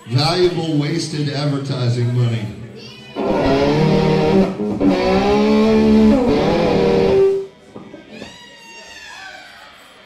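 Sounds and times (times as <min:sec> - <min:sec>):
distorted electric guitar chord: 0:03.2 - 0:07.5.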